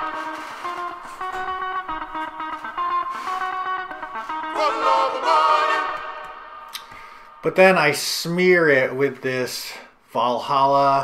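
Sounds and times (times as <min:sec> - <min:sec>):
looped funk guitar sample: 0:00.0 - 0:05.3
chanting voices: 0:04.5 - 0:06.8.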